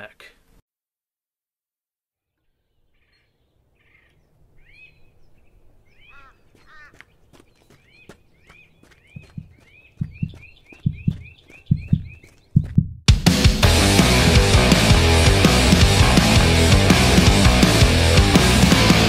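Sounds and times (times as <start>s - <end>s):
bird chirping: 2.4s - 12.8s
low heartbeat thumps: 9.1s - 19.0s.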